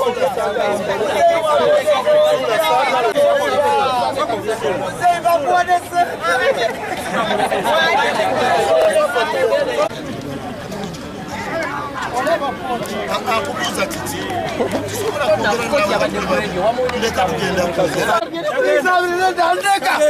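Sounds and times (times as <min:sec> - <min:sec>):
people talking at once: 0:00.0 - 0:20.0.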